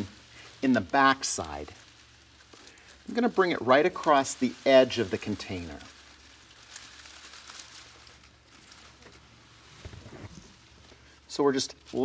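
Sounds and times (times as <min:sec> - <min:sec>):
faint rustling of grass blades: 0:00.0 - 0:12.0.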